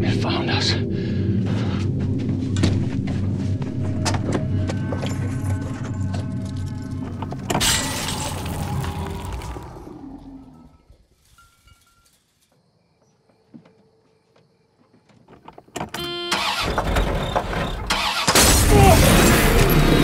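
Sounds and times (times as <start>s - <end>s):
tense horror film score: 0.0s - 11.0s, 16.0s - 20.0s
loud crash: 7.5s - 10.0s, 16.7s - 20.0s.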